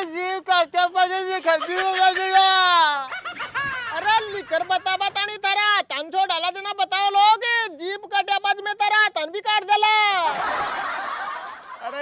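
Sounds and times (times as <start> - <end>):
man shouting: 0.0 - 3.1, 3.9 - 10.3.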